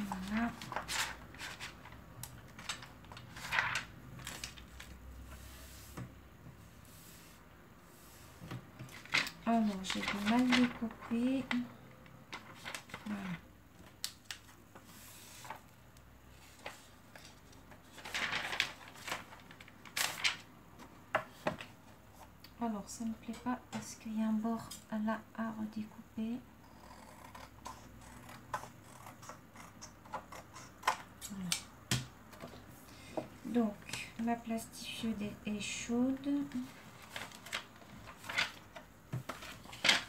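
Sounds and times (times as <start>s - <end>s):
plastic pouch and paper handling: 8.8s - 11.6s, 16.6s - 20.5s.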